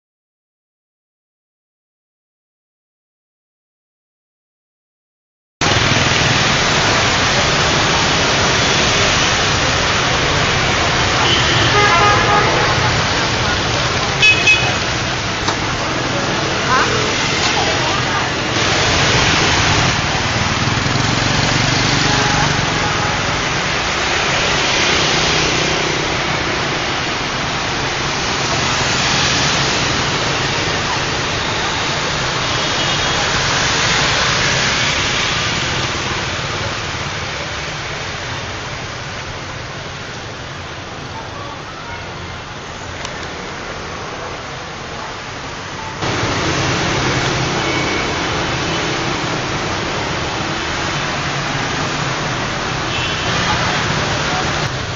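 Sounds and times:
motor scooters and cars passing: 0:05.6 - 0:54.9.

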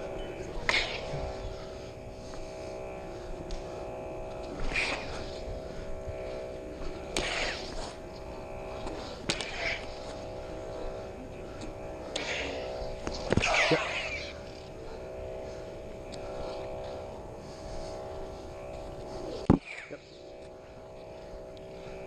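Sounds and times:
electronic sword humming: 0:00.0 - 0:22.0.

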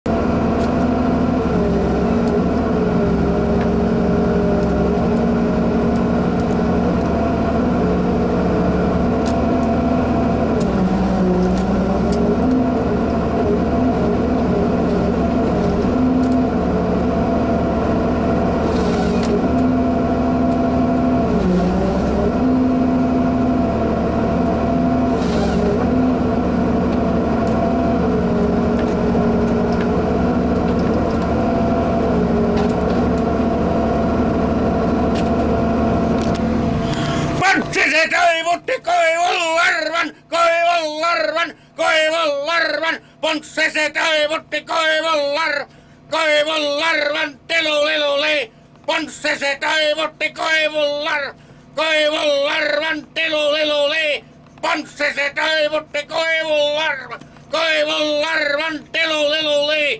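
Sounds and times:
diesel engine and hydraulics running: 0:00.1 - 0:59.9.

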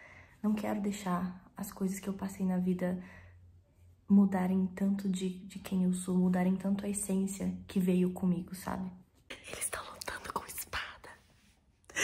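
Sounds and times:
woman whispering: 0:09.3 - 0:11.4.

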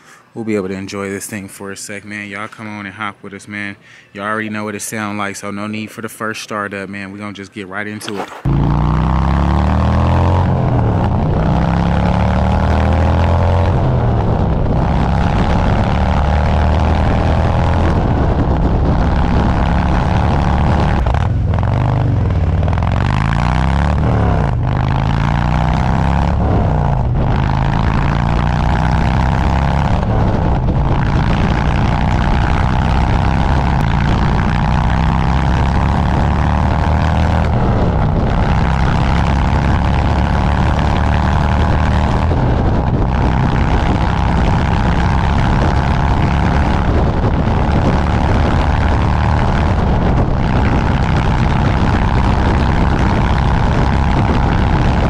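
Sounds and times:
motorcycle engine running loud: 0:08.4 - 0:55.0.

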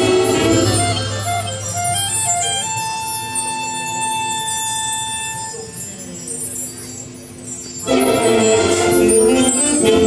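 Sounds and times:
concert band playing softly: 0:00.0 - 0:10.0.

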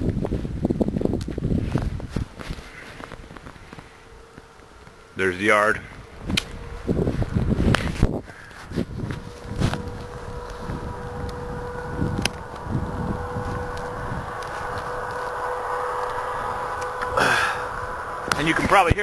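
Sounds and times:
distant highway traffic hum: 0:00.0 - 0:19.0
faint held tone: 0:09.2 - 0:18.3.

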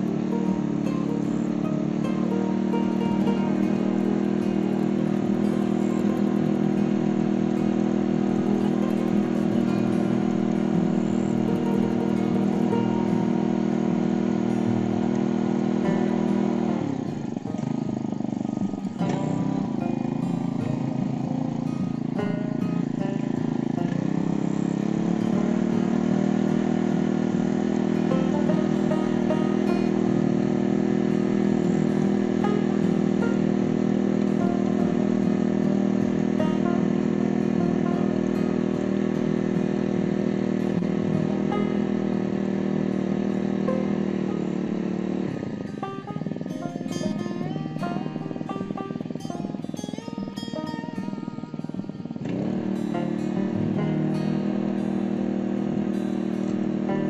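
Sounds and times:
small tiller engine running: 0:00.0 - 0:57.0
tines churning dry soil: 0:00.0 - 0:57.0.

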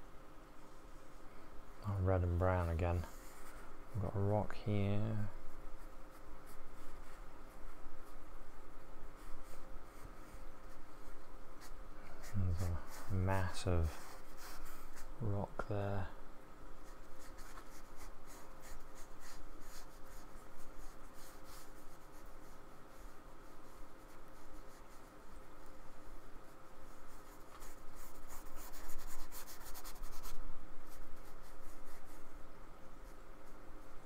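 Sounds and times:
paintbrush scrubbing and dabbing: 0:02.2 - 0:15.2, 0:16.8 - 0:32.4.

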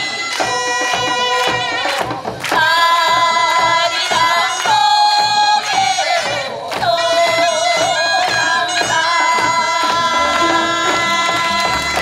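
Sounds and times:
drum strokes: 0:09.8 - 0:12.0
reedy wind instrument melody: 0:10.0 - 0:12.0.

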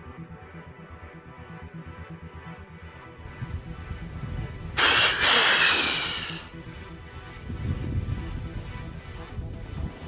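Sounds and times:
deer call hissing: 0:04.8 - 0:06.5.

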